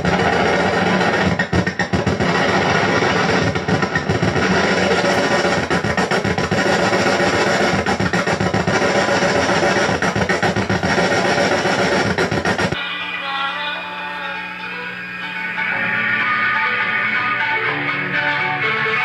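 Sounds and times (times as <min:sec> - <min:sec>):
distorted electronic noise: 0:00.0 - 0:19.0.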